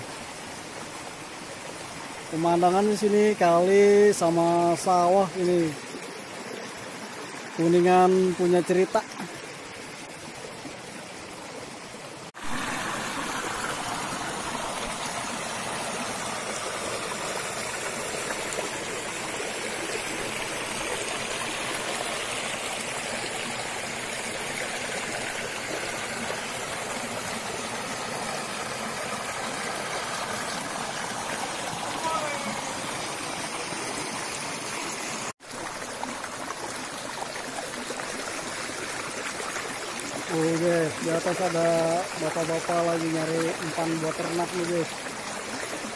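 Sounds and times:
stream rushing over stones: 0:00.0 - 0:45.9.

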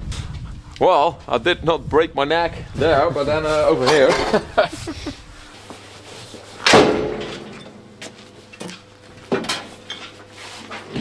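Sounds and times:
metal door clunks: 0:06.6 - 0:07.9
heavy steel door slamming: 0:06.7 - 0:07.6.

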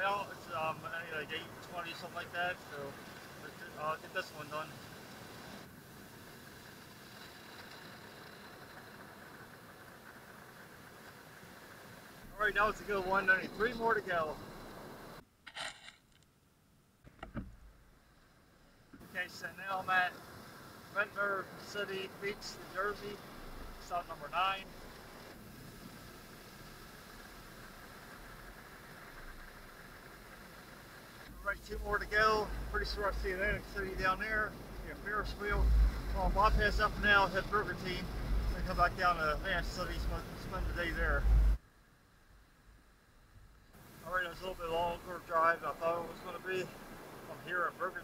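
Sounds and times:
ocean surf breaking: 0:00.0 - 0:09.0, 0:19.0 - 0:41.6, 0:44.0 - 0:48.0.

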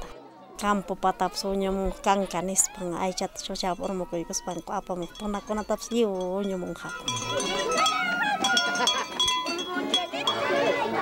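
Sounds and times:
voices talking: 0:00.0 - 0:11.0
small metal bells ringing: 0:02.1 - 0:11.0.

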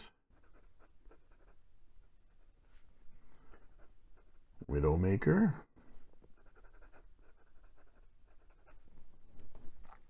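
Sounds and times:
pen nib scratching on paper: 0:00.4 - 0:01.6, 0:06.3 - 0:08.8.

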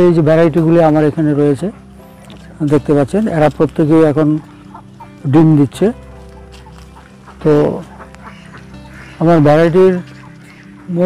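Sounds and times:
background music: 0:00.0 - 0:11.0
ducks calling: 0:00.0 - 0:11.0.

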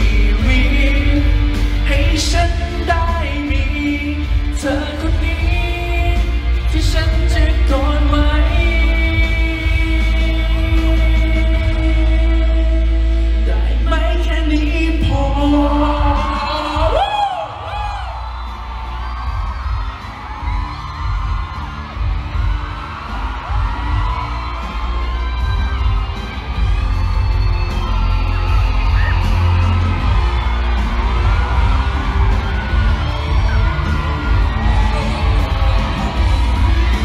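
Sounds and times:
amplified live concert music: 0:00.0 - 0:37.0
crowd cheering and screaming: 0:00.0 - 0:37.0.

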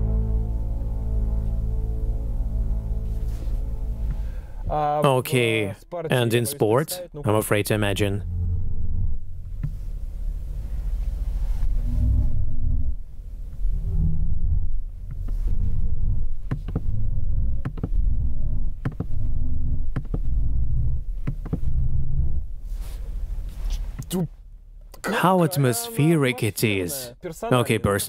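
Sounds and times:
deep electronic hum surging: 0:00.0 - 0:05.0, 0:07.3 - 0:24.8.

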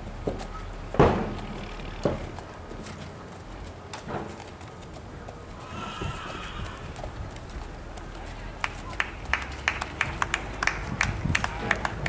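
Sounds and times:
horse hoofbeats at a trot: 0:00.0 - 0:12.0.

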